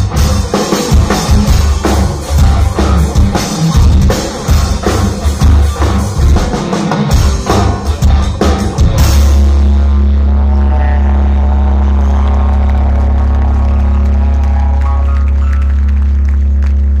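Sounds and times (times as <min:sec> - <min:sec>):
low bass drone: 0:00.0 - 0:06.5, 0:07.1 - 0:17.0
higher chord notes: 0:07.1 - 0:17.0.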